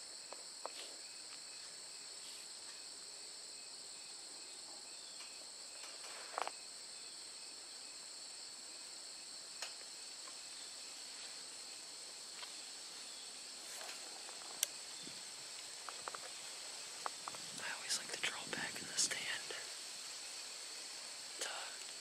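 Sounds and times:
insects chirring: 0:00.0 - 0:22.0.

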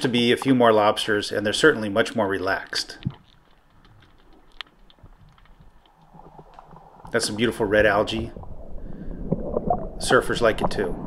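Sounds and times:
small clicks: 0:02.8 - 0:07.2
underwater low rumble: 0:02.9 - 0:11.0.

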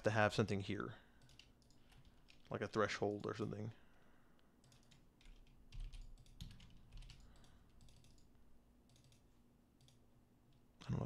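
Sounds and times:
computer keyboard typing: 0:01.2 - 0:03.5, 0:04.6 - 0:09.2, 0:09.8 - 0:10.0.

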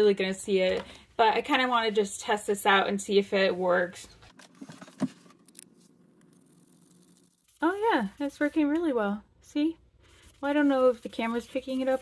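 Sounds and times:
sponge rubbing on floor: 0:10.1 - 0:12.0.

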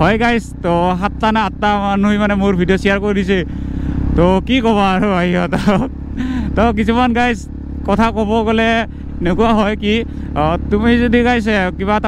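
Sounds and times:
man talking: 0:00.0 - 0:03.5, 0:04.1 - 0:12.0
motorcycle engine drone: 0:00.0 - 0:12.0.

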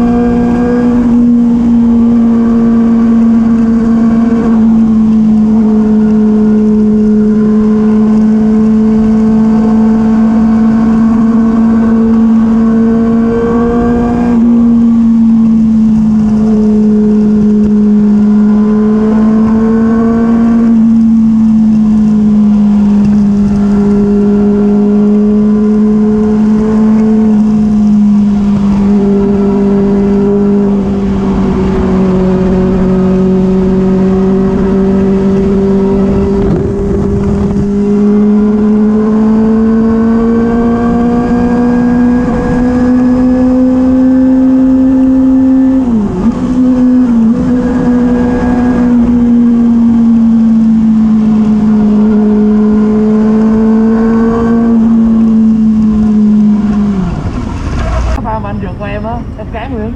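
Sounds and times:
motorcycle engine at high revs: 0:00.0 - 0:58.2.

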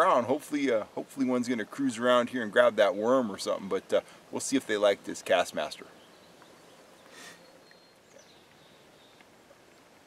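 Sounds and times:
faint hiss: 0:00.0 - 0:10.0
faint high chirps: 0:06.0 - 0:09.9.

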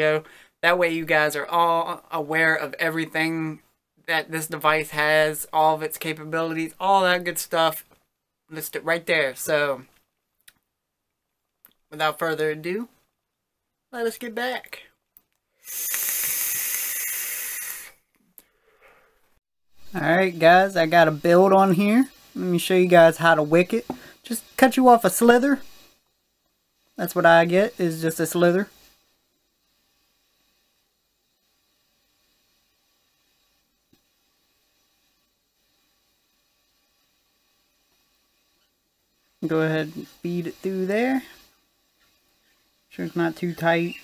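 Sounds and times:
airy hiss of vape draw: 0:15.5 - 0:44.0.

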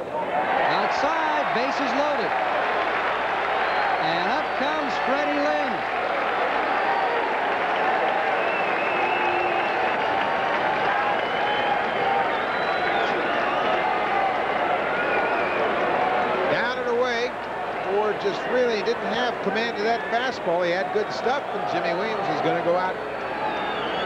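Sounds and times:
crowd clapping: 0:00.6 - 0:24.0
man talking: 0:00.7 - 0:02.3, 0:04.0 - 0:05.8, 0:16.5 - 0:17.3, 0:17.9 - 0:23.0.

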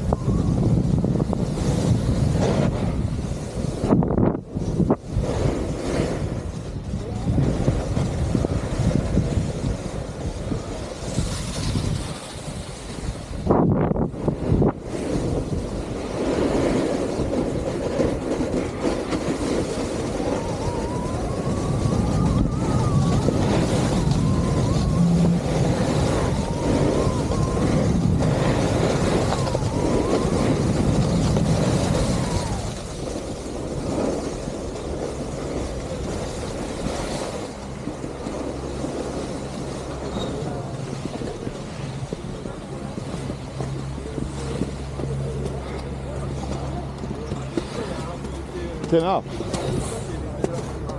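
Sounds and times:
snowboard scraping on snow: 0:00.0 - 0:50.9
wind on microphone: 0:00.0 - 0:50.9.

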